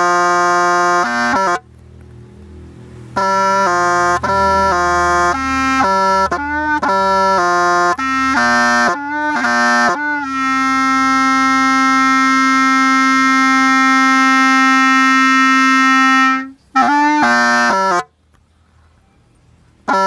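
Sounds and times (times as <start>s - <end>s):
solo wind instrument melody: 0.0s - 1.7s, 3.2s - 18.2s.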